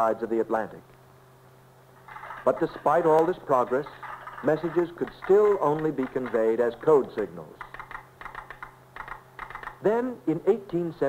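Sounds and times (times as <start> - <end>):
faint low hum: 0.0 - 11.0
telegraph clicking: 2.0 - 9.9.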